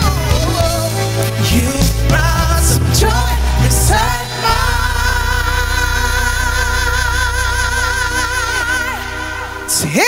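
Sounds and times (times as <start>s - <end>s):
man singing with vibrato: 0.0s - 10.0s
soul band low chord: 0.0s - 10.0s.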